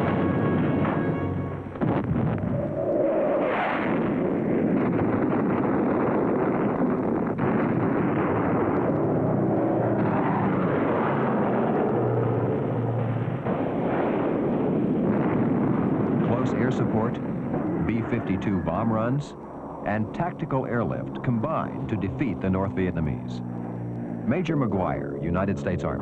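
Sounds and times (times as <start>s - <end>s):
aircraft engine noise: 0.0s - 26.0s
rumble of explosions: 0.0s - 26.0s.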